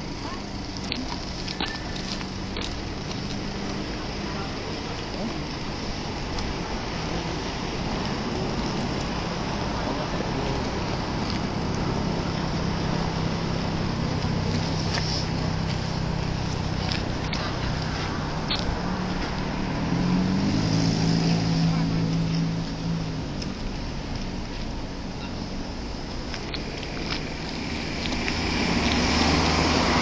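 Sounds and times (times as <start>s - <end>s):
cars driving past: 0.0s - 30.0s
traffic hiss: 0.0s - 30.0s
vehicle engine running: 0.0s - 30.0s
wind: 0.0s - 30.0s.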